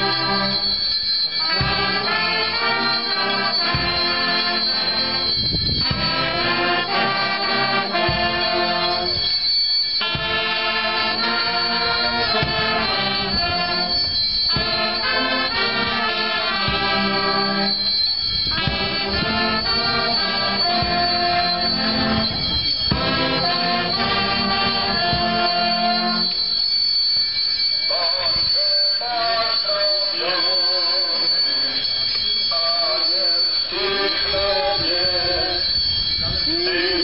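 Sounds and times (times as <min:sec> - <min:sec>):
brass band playing chords: 0:00.0 - 0:30.5
people singing: 0:32.5 - 0:35.7, 0:36.3 - 0:37.0.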